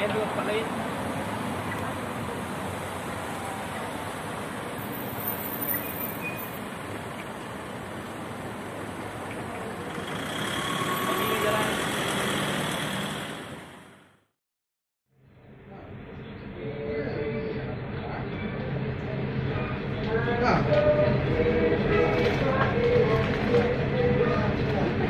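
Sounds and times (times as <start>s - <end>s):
vehicle passing: 0.0s - 14.2s
road traffic noise: 0.0s - 14.4s, 15.3s - 25.0s.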